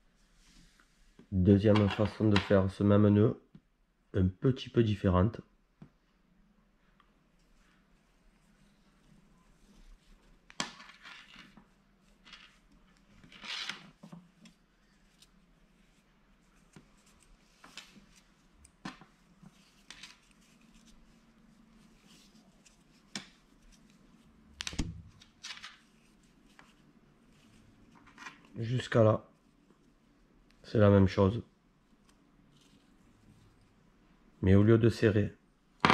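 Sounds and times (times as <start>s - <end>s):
rope rustling and rubbing: 7.2s - 30.6s, 31.7s - 34.0s.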